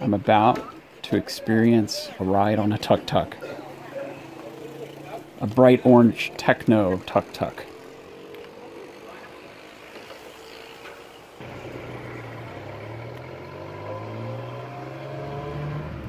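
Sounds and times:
small engine accelerating: 3.3 - 16.0.

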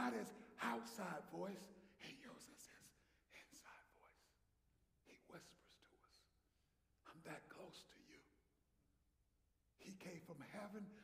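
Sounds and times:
man whispering faintly: 2.0 - 4.4, 5.1 - 6.4.

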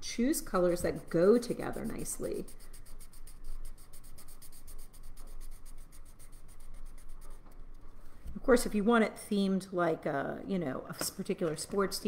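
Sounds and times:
marker scrubbing on paper: 0.5 - 7.5.

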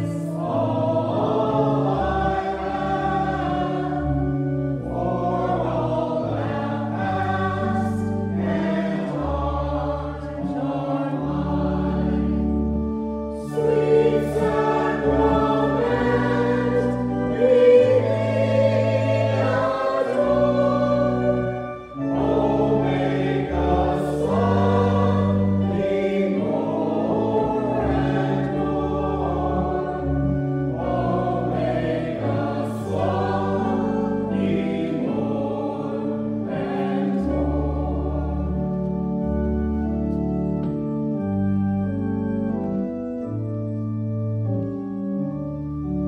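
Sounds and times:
choir singing a hymn: 0.0 - 43.8
organ: 0.0 - 46.0.

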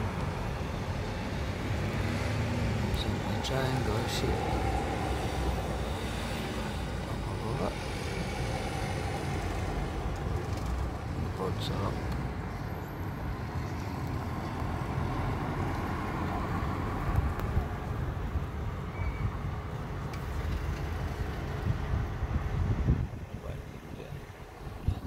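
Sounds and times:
wind buffeting microphone: 16.8 - 18.4, 20.4 - 25.0.

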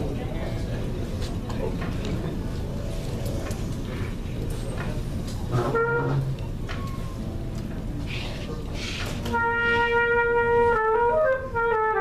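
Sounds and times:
room noise: 0.0 - 12.0
trumpet notes: 5.5 - 6.5, 9.2 - 12.0.

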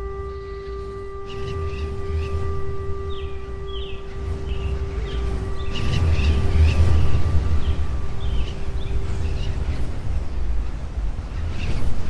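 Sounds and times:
held drone tone: 0.0 - 12.0
low rumble: 0.0 - 12.0
bird-like chirps: 0.3 - 10.4.

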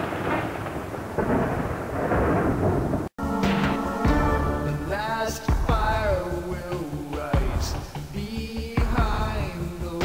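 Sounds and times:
thunderclap: 0.0 - 4.9
rolling thunder rumble: 0.0 - 7.8.

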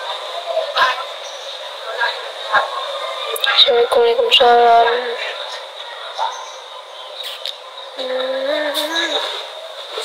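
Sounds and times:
woman humming: 8.0 - 9.2.

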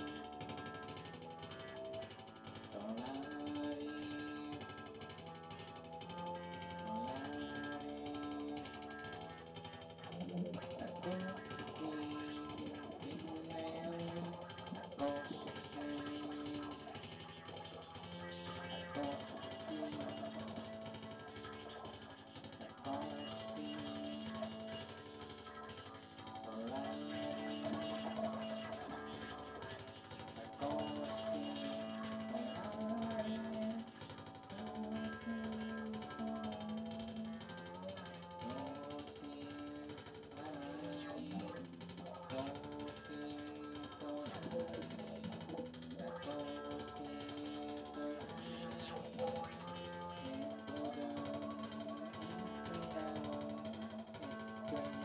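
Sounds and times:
electric guitar slow melody: 0.0 - 55.0.

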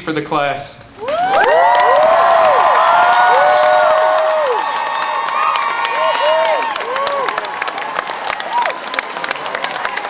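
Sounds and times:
applause: 1.0 - 10.0
crowd cheering and whooping: 1.0 - 10.0.

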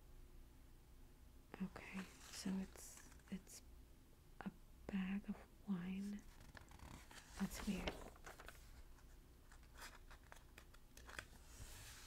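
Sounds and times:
magazine pages rustling: 1.8 - 3.3, 6.2 - 12.0.

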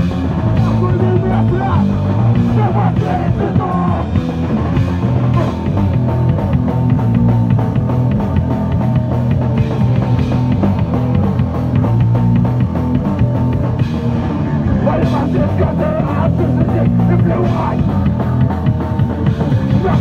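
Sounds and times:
punk rock band playing: 0.0 - 20.0.

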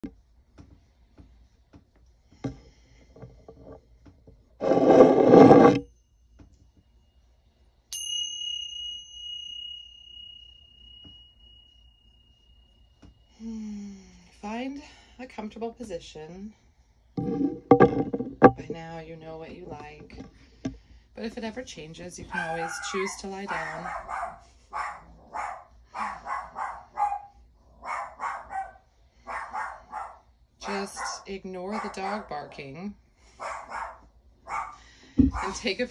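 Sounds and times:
rubbing rustling noise: 4.6 - 5.8
meditation bell ringing: 7.9 - 12.8
dog barking: 22.3 - 32.5, 33.4 - 35.6.

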